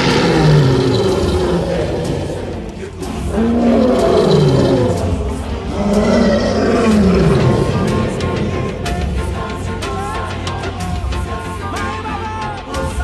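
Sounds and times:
lion roaring: 0.0 - 9.6.

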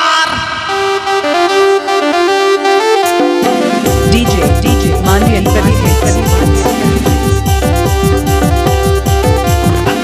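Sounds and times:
electronic keyboard melody: 0.7 - 10.0.

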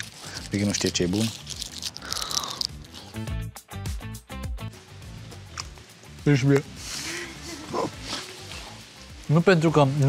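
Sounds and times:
chocolate being bitten and chewed: 0.0 - 3.4
background music: 0.0 - 10.0.

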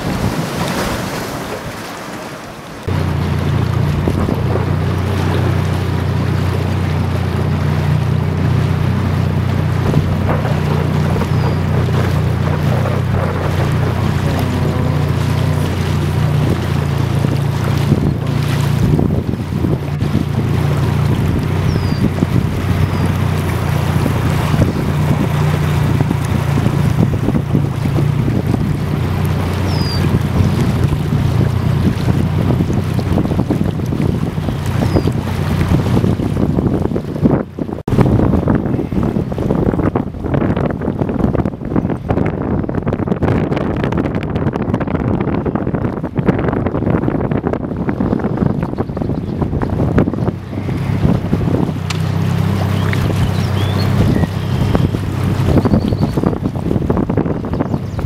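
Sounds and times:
wind on microphone: 0.0 - 1.8, 2.9 - 58.0
boat engine droning: 0.0 - 58.0.

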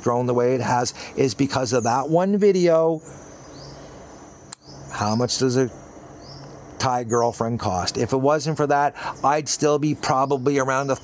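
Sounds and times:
high-pitched insect drone: 0.0 - 9.5
bird rising chirp: 0.0 - 11.0
sharp click: 4.5 - 4.7.

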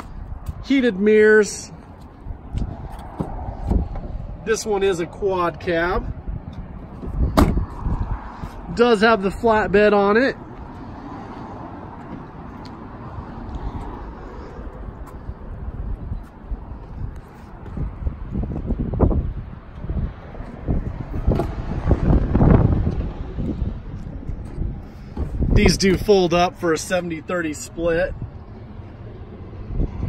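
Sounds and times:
wind buffeting microphone: 0.0 - 26.7, 27.8 - 30.0.

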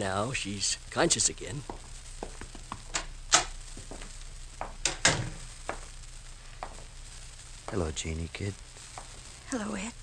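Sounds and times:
recording hiss and crackle: 0.0 - 10.0.

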